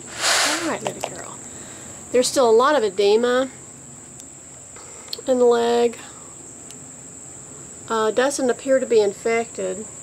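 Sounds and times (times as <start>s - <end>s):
crickets calling: 0.0s - 10.0s.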